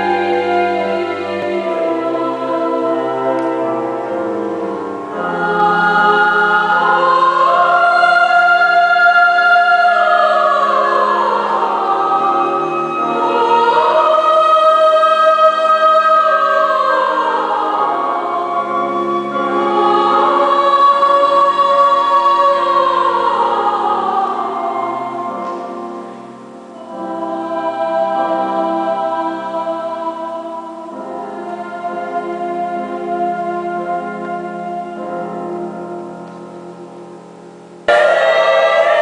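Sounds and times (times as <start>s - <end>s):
mixed choir singing: 0.0s - 36.2s, 37.8s - 39.0s.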